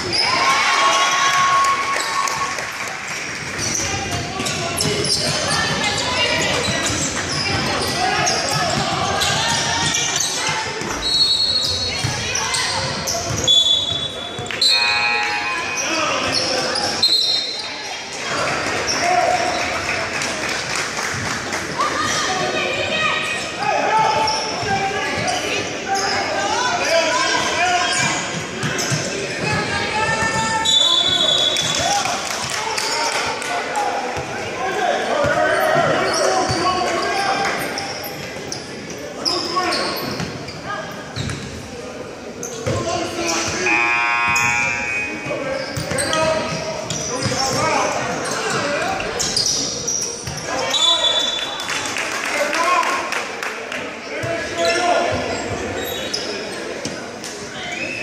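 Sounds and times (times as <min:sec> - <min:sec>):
voices echoing in a hall: 0:00.0 - 0:58.0.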